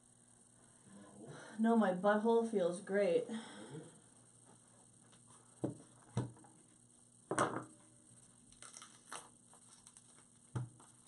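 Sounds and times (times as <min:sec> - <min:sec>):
small objects clattering on table: 0:08.5 - 0:10.9.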